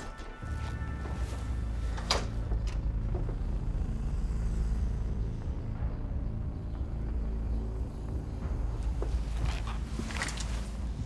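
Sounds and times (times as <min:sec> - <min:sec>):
low steady rumble: 0:00.8 - 0:11.0.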